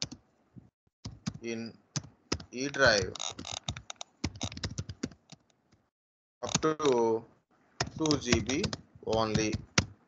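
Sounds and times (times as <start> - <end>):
computer keyboard typing: 1.0 - 5.5, 7.8 - 10.0.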